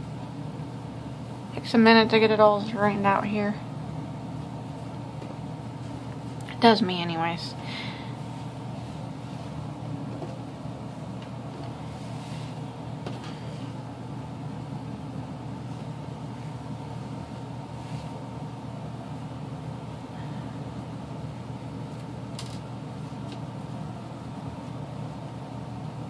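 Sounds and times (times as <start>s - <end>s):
low machine hum: 0.0s - 26.0s.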